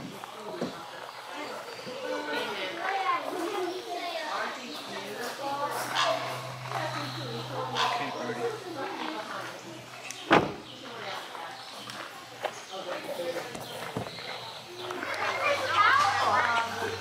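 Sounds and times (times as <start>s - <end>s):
children and adults chattering: 0.0s - 17.0s.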